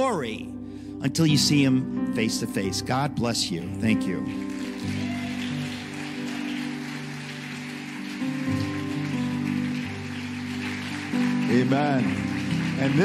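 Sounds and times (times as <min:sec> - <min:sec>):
keyboard playing soft chords: 0:00.0 - 0:13.0
congregation applauding: 0:03.8 - 0:13.0.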